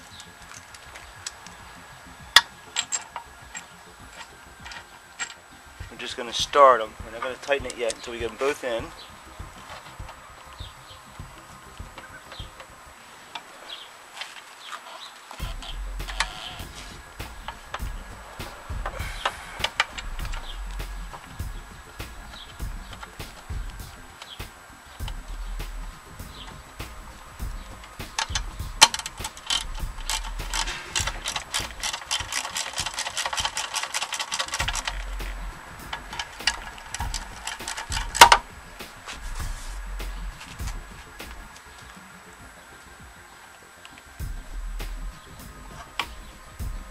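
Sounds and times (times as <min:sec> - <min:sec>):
sharp snap: 0:15.4 - 0:41.6, 0:44.2 - 0:46.9
socket ratchet clicking: 0:27.9 - 0:39.2.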